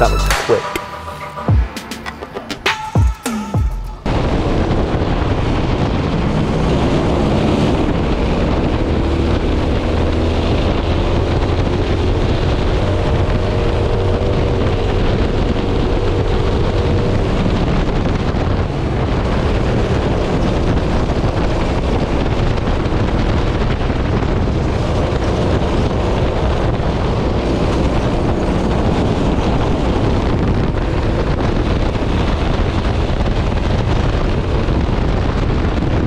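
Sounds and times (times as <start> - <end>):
wind noise on microphone: 4.0 - 36.0.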